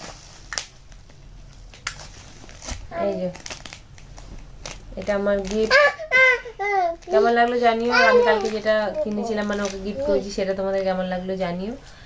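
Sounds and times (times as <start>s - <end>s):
figurine crinkling and clicking: 0.5s - 5.8s, 6.9s - 10.3s.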